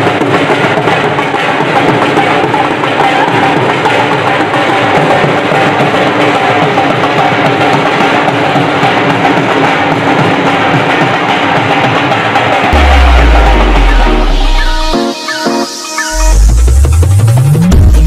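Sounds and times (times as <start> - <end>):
dhol drums played with sticks: 0.0 - 14.9.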